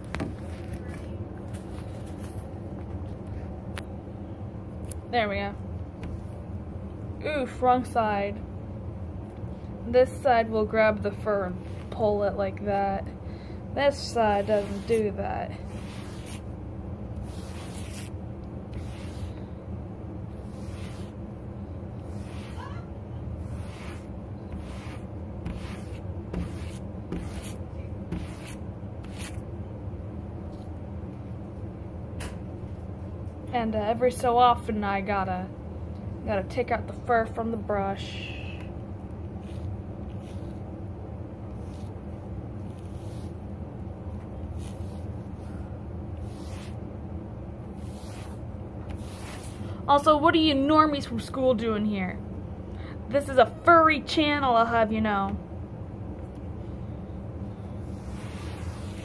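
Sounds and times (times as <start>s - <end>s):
steady low hum: 0.0s - 59.0s
brush strokes on fur fabric: 14.1s - 16.5s, 17.2s - 18.1s, 18.7s - 19.4s, 20.3s - 21.3s, 22.0s - 22.8s, 23.4s - 29.4s, 39.4s - 40.6s, 41.5s - 42.0s, 42.6s - 43.5s, 44.5s - 45.6s, 46.2s - 46.8s, 47.7s - 49.6s, 57.8s - 59.0s.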